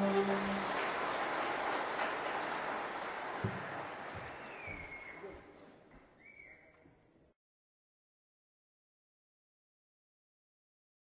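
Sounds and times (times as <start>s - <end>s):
short whistling chirp: 4.2s - 5.3s, 6.2s - 6.7s.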